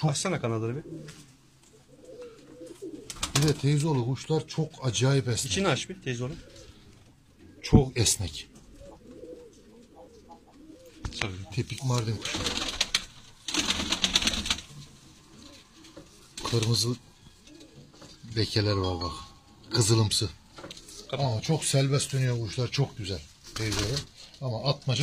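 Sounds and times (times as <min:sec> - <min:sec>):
pigeons cooing: 0:00.6 - 0:04.0, 0:05.4 - 0:21.7
pigeon flapping its wings: 0:03.0 - 0:03.6, 0:12.0 - 0:14.8.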